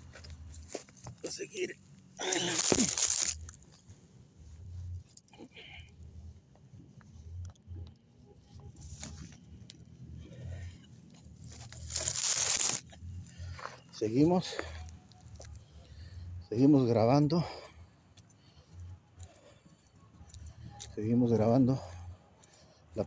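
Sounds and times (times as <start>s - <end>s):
soft crunches and thumps: 2.2s - 4.0s, 6.3s - 14.0s
phone microphone rubbing on clothing: 6.0s - 13.2s.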